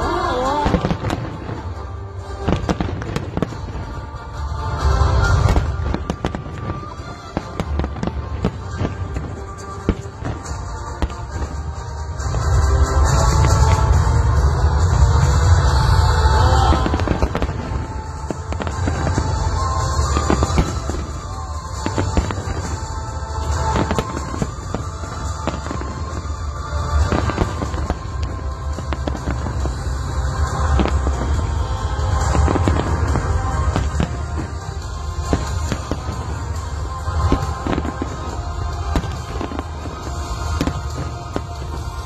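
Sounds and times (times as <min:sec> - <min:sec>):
firework bursts and crackle: 0:00.0 - 0:42.0.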